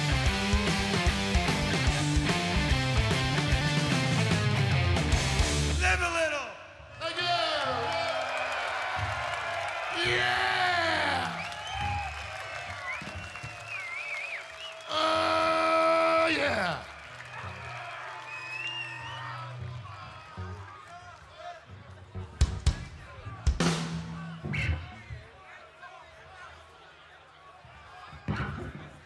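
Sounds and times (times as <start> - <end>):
rock band playing: 0.0 - 6.1, 23.5 - 24.8
crowd cheering and whooping: 7.4 - 21.6.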